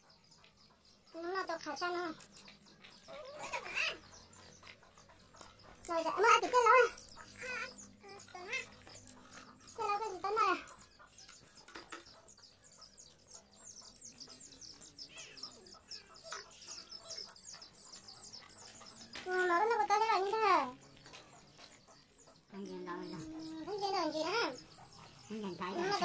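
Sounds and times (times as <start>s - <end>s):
small birds chirping: 0.0s - 26.0s
children's high-pitched voices: 1.0s - 5.0s, 5.6s - 11.5s, 19.1s - 21.3s, 22.6s - 26.0s.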